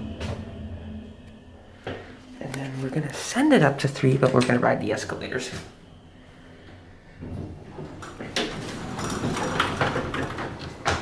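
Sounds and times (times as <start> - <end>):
elevator doors closing: 0.0 - 2.8, 3.9 - 11.0.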